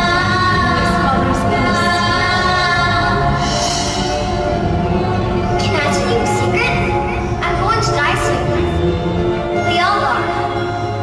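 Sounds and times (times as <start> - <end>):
musical accompaniment: 0.0 - 11.0.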